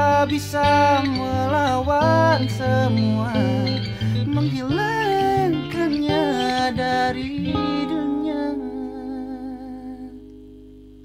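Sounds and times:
man singing long note with vibrato: 0.0s - 10.2s
acoustic guitar chord ringing: 0.0s - 11.0s.

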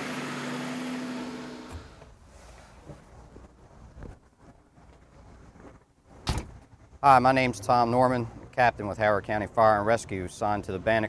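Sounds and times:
vehicle door shutting clunk: 1.2s - 2.2s
faint background noise: 1.7s - 11.0s.

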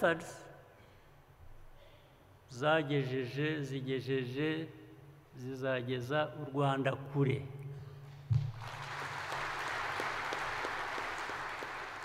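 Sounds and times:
audience applauding: 8.5s - 12.0s.

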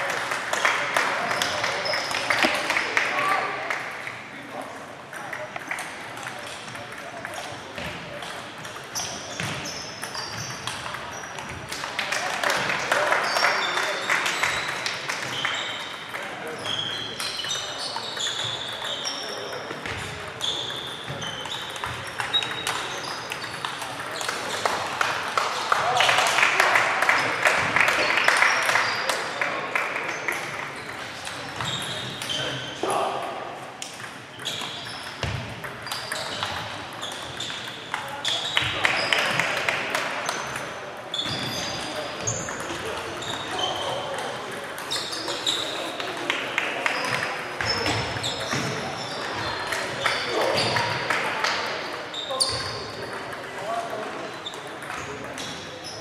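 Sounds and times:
murmur of voices: 0.0s - 56.0s
table tennis balls clicking: 20.3s - 25.2s.

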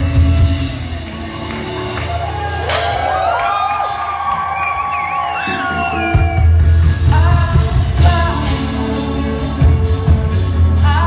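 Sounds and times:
live band breakdown: 0.0s - 11.0s.

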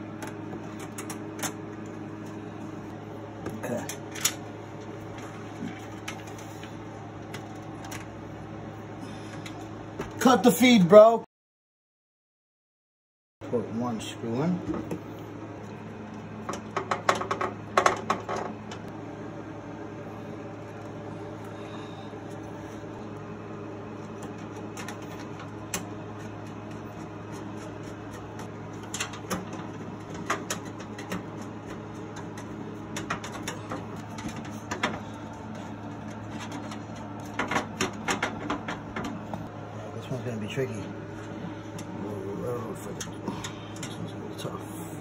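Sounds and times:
steady low hum: 0.0s - 11.3s, 13.4s - 45.0s.

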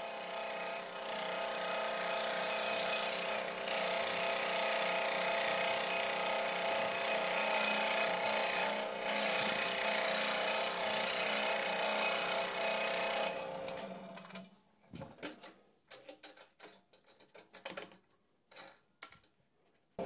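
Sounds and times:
scroll saw cutting plywood: 0.1s - 14.5s.

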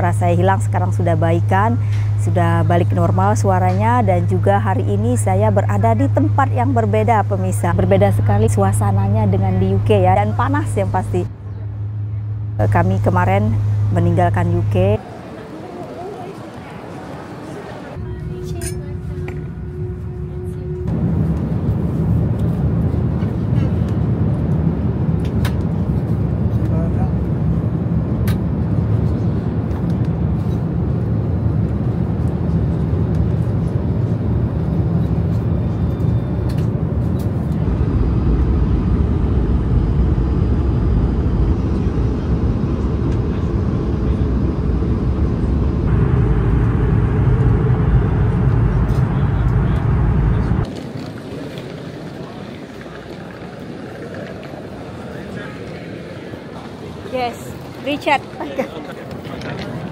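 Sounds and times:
airliner cabin drone: 0.0s - 59.9s
airport terminal hum: 0.0s - 59.9s.

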